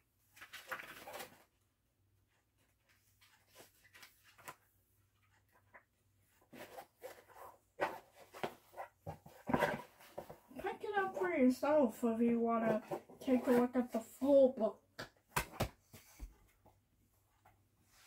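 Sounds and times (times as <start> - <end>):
book pages turning: 2.8 - 5.8.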